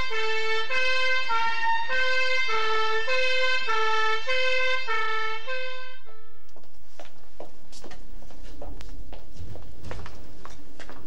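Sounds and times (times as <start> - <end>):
two-tone emergency siren: 0.0 - 6.5.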